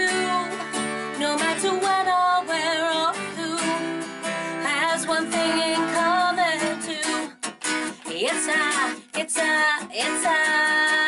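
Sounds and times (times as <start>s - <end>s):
acoustic guitar: 0.0s - 11.0s
woman singing with vibrato: 0.0s - 11.0s.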